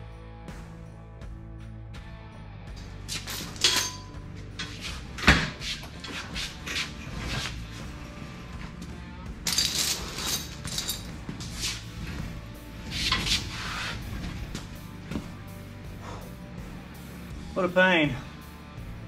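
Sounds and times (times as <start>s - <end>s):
background music: 0.0s - 19.0s
chain rattling: 2.8s - 5.2s, 9.4s - 12.2s
metal clanks: 2.8s - 5.6s.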